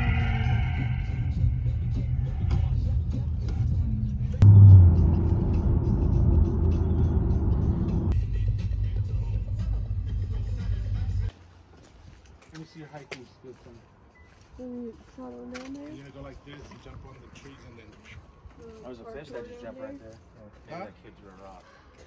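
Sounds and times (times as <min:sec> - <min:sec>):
road and engine rumble: 0:00.0 - 0:11.4.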